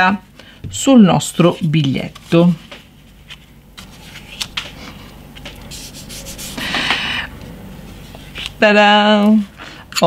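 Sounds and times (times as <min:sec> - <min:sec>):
hands rubbing paper: 0:03.2 - 0:06.9.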